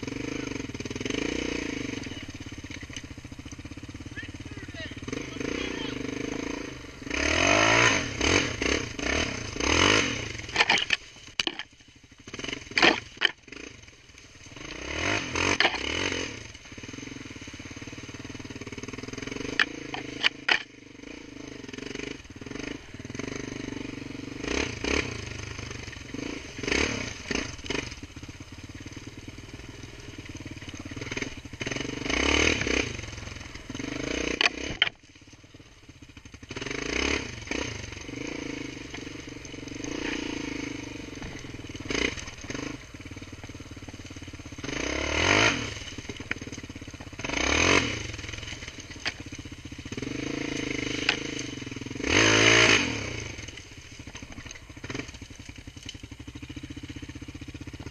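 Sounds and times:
off-road vehicle engine revving: 0:00.0 - 0:57.9
knocks and clatter from bumps: 0:10.5 - 0:11.7, 0:12.7 - 0:13.4.

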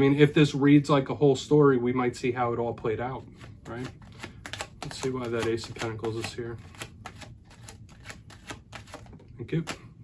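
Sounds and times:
cards being shuffled: 0:03.2 - 0:10.0.

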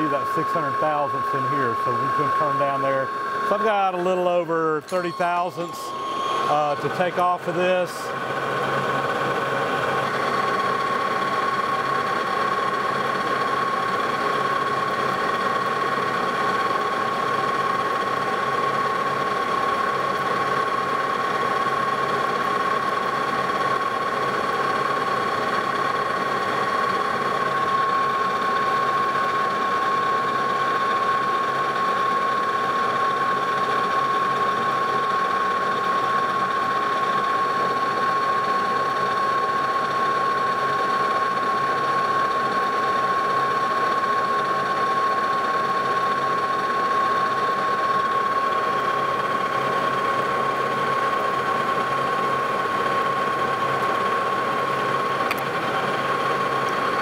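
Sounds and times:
high-pitched whine: 0:00.0 - 0:57.0
metal lathe cutting steel: 0:00.0 - 0:57.0.

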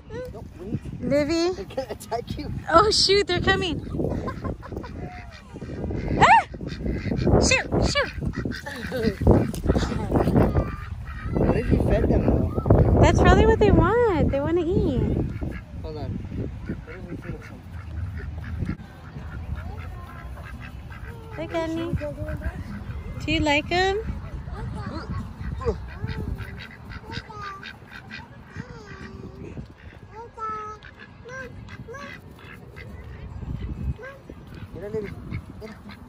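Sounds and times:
ducks quacking: 0:00.4 - 0:36.0.

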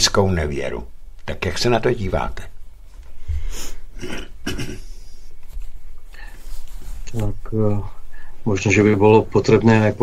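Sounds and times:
person breathing: 0:03.2 - 0:04.0, 0:06.1 - 0:06.9, 0:07.9 - 0:08.4
throat noises: 0:03.3 - 0:05.3.

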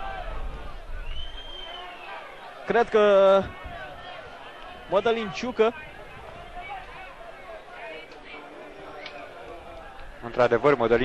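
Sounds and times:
stadium crowd murmur: 0:00.0 - 0:11.0.

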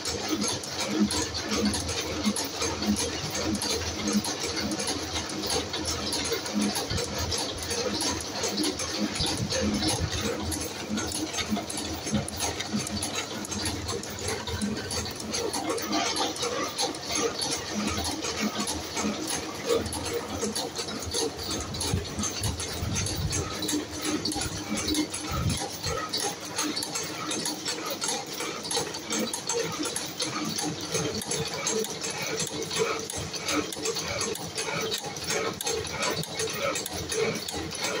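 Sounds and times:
spring coiling machine clatter: 0:00.0 - 0:38.0.

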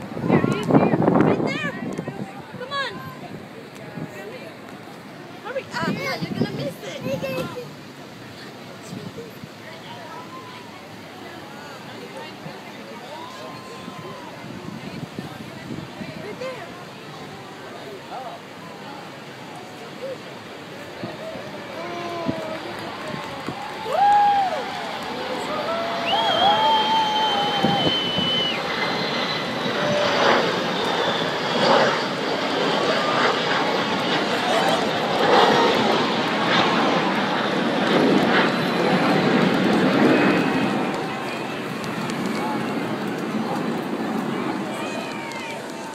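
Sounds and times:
jet engine flying low past: 0:00.0 - 0:45.9
spectators' voices: 0:00.0 - 0:45.9
long high whistle: 0:25.4 - 0:30.5.

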